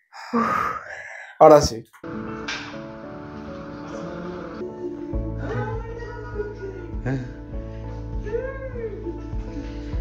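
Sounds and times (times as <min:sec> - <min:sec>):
background music: 0:02.0 - 0:10.0.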